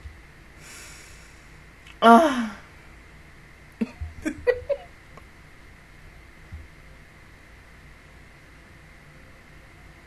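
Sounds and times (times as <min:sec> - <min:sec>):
woman breathing out: 0:00.6 - 0:02.7.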